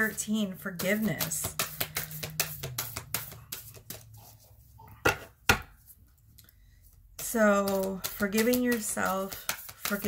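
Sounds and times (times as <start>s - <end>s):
cards being shuffled: 0.9s - 4.1s, 7.4s - 10.0s.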